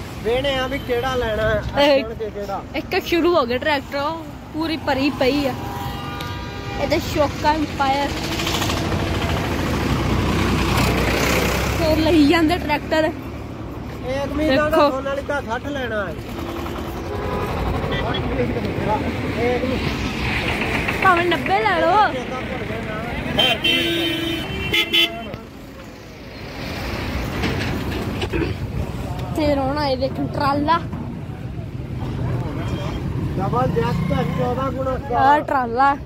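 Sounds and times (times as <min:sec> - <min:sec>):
traffic rumble: 0:00.0 - 0:36.0.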